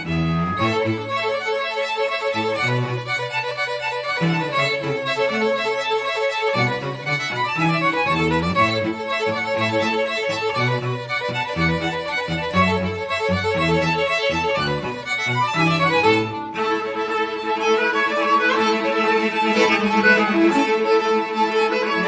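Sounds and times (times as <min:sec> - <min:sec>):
string quartet playing: 0:00.0 - 0:22.0.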